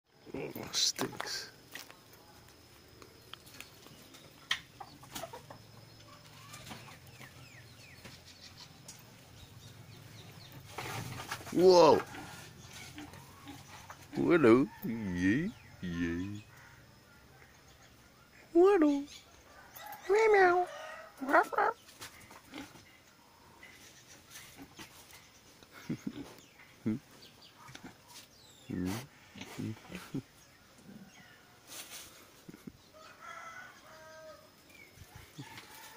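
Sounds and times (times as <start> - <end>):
pigs rooting at feed bowl: 10.2 - 14.3
pigs grunting: 11.0 - 15.2, 22.4 - 22.9, 28.6 - 31.1
fowl clucking: 20.9 - 22.8.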